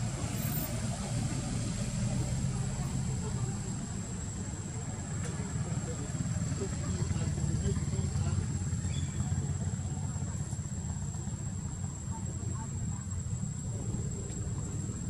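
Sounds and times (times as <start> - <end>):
engine running low rumble: 0.0 - 15.0.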